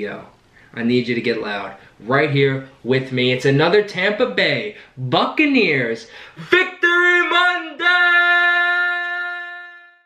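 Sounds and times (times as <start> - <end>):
man yelling: 6.4 - 10.0.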